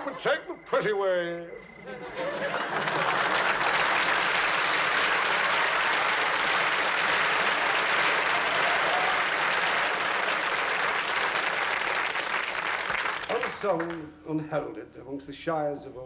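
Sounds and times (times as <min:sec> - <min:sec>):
audience applauding: 0:02.1 - 0:14.1.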